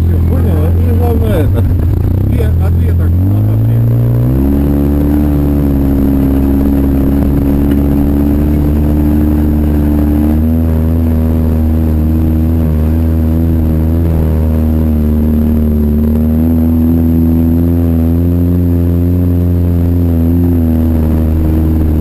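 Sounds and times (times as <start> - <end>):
quad bike engine running: 0.0 - 22.0.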